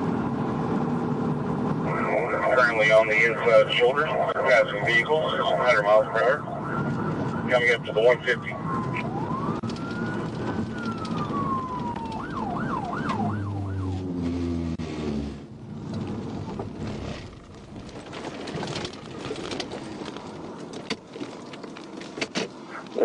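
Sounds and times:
road and wind noise: 0:00.0 - 0:23.0
police siren wailing and yelping: 0:01.9 - 0:14.1.

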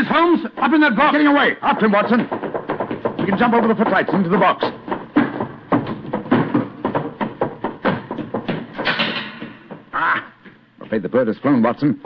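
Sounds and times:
hurried footsteps knocks and thuds: 0:00.0 - 0:11.0.

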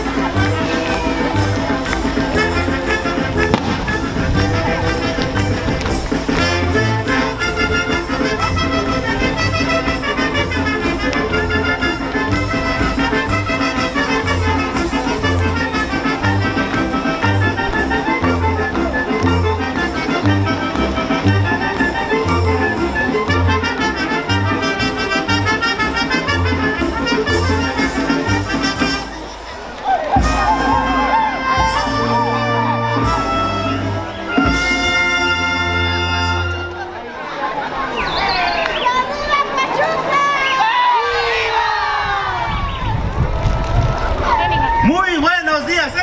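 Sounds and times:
brass band playing folk dance music: 0:00.0 - 0:46.0.

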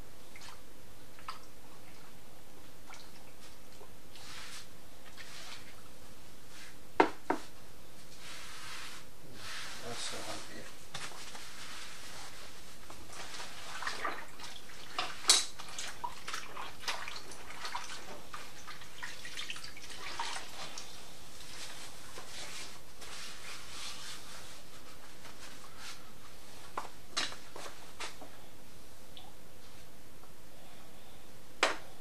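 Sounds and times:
water splashing and dripping: 0:13.8 - 0:20.8.

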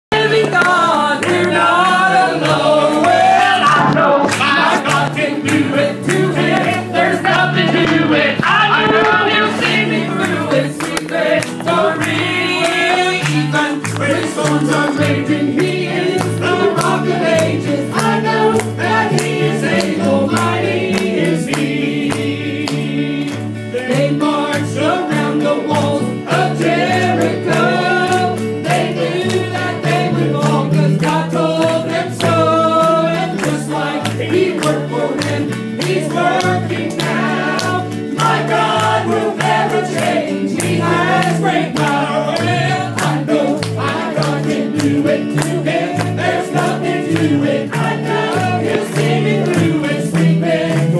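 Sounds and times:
stepping bass line: 0:00.1 - 0:22.5
gospel group singing in harmony: 0:00.1 - 0:50.9
instrumental backing with beat: 0:00.1 - 0:50.9.

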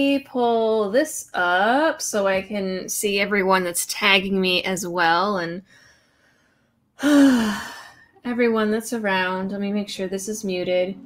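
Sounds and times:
woman sighing breathily: 0:07.0 - 0:08.2.

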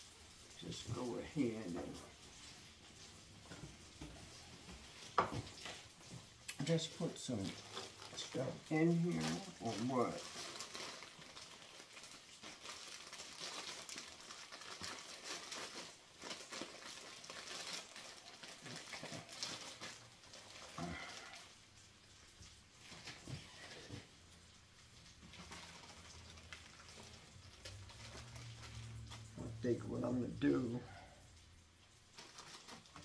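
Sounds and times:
plastic bag crinkling: 0:00.3 - 0:33.0.

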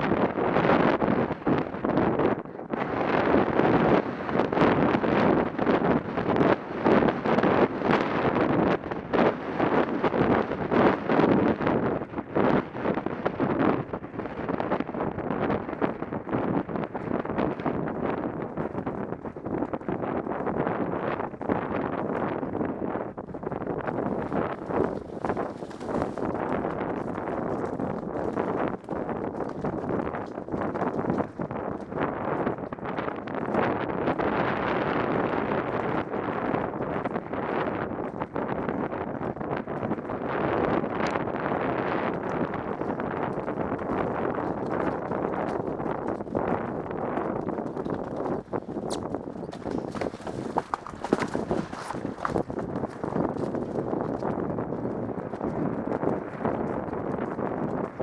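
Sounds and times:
wind buffeting microphone: 0:00.0 - 0:58.0
horse hoofbeats: 0:14.6 - 0:58.0.

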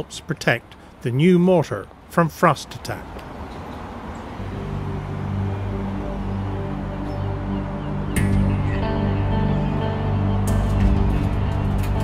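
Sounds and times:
outdoor background noise: 0:00.0 - 0:12.0
low background music: 0:04.2 - 0:12.0.

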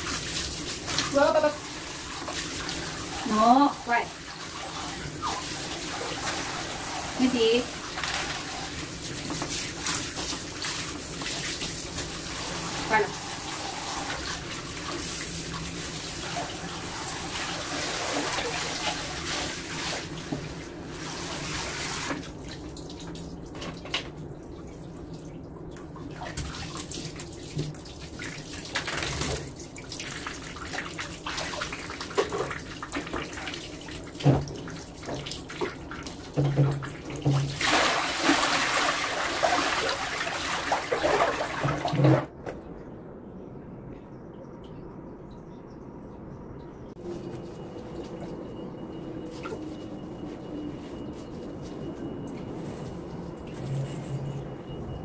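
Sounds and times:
water rushing from tipped basin: 0:00.0 - 0:22.6, 0:26.0 - 0:42.3
water splashing and sloshing: 0:00.0 - 0:42.8, 0:46.8 - 0:55.0.

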